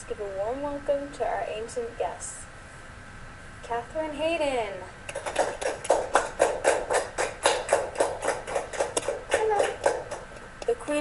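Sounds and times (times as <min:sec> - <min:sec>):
rhythmic hand clapping: 0:05.1 - 0:11.0
person's voice: 0:09.3 - 0:09.8.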